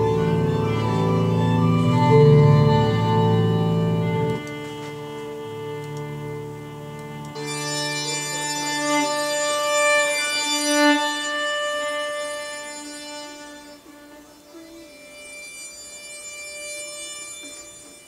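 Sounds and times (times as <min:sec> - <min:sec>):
violin playing long bowed notes: 0:00.0 - 0:18.0.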